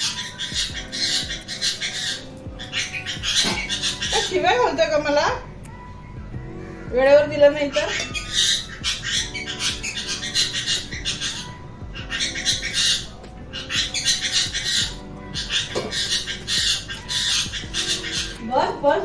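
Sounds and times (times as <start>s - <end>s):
parrot squawking: 0.0s - 5.4s, 6.6s - 19.0s
soft background music: 0.0s - 19.0s.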